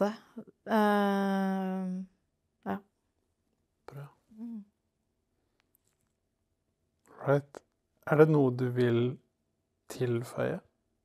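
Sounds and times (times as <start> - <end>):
person humming: 3.9 - 4.7.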